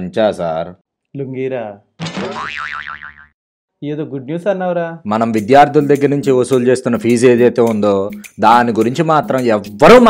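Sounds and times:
cartoon boing sound effect: 2.0s - 3.4s.

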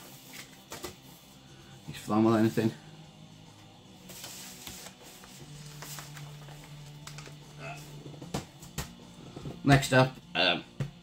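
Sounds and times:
quiet background music: 0.0s - 11.0s
record sleeve rustling: 4.0s - 7.5s.

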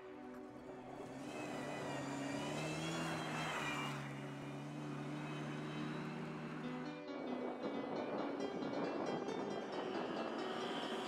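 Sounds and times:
rally car engine passing: 0.0s - 11.0s.

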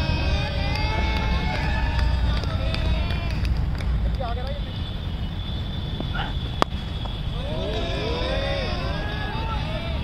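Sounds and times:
people shouting across a field: 0.0s - 3.6s, 7.2s - 10.0s
steady low rumble: 0.0s - 4.4s.

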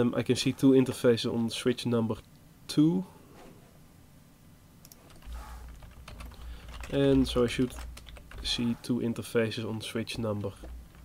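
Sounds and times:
computer keyboard typing: 4.8s - 8.8s, 9.7s - 11.0s.

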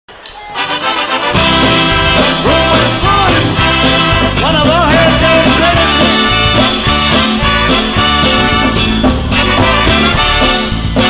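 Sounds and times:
drums: 0.1s - 11.0s
live band with brass: 0.5s - 11.0s
bass: 0.8s - 11.0s.

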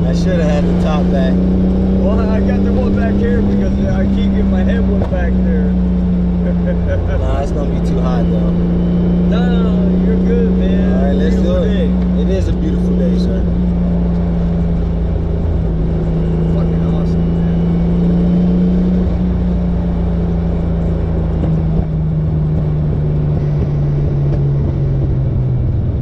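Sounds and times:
car engine at cruising revs: 0.0s - 26.0s.

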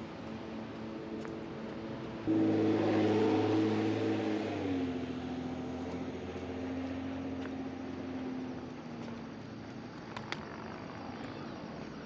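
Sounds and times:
vehicle engine passing by: 0.0s - 11.2s.

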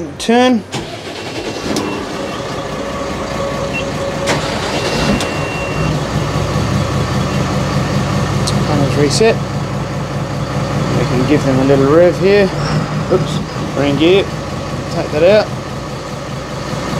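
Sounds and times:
diesel engines starting: 0.0s - 16.9s
short electronic beep: 1.8s - 2.8s, 3.4s - 6.0s.

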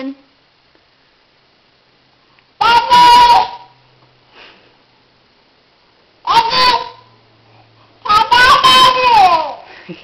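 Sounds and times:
faint low hum: 0.0s - 10.0s
person sniffing: 4.3s - 4.8s.

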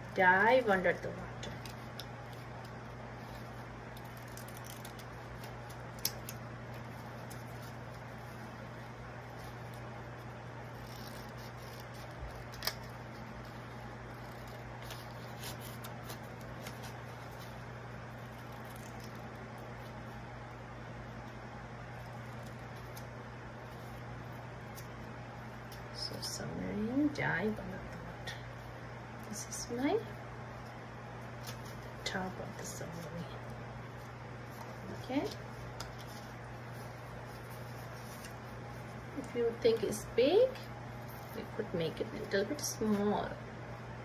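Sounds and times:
low steady hum: 0.0s - 44.0s
scissors snipping paper: 0.2s - 19.9s
paper rustling: 0.4s - 20.2s, 31.4s - 41.5s.

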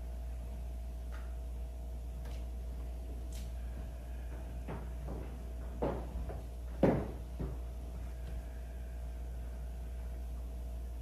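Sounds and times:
steady low hum: 0.0s - 11.0s
dull knocks: 4.2s - 8.3s.

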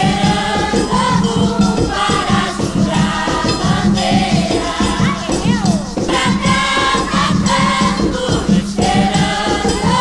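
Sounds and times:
choir singing: 0.0s - 10.0s
hand drums: 0.0s - 10.0s.

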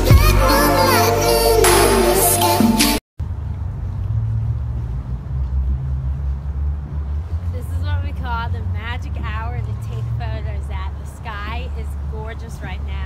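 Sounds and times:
low outdoor rumble: 3.2s - 13.0s.

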